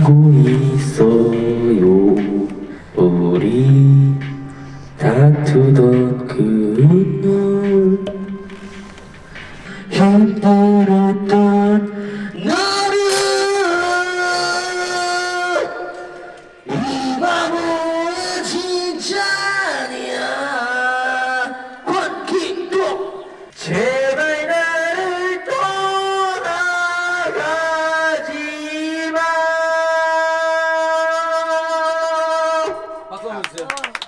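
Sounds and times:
man singing off-key: 0.0 - 33.1.

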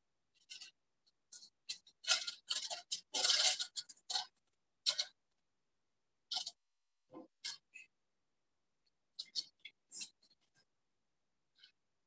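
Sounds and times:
paper rustling and crackling: 0.4 - 5.2.

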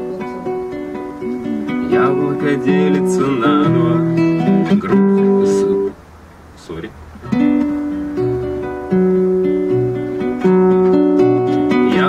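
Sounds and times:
nylon-string guitar picking: 0.0 - 12.0.

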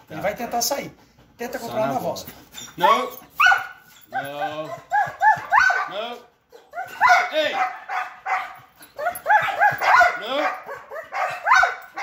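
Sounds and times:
dog yipping and whining: 2.4 - 5.9, 6.5 - 12.0.

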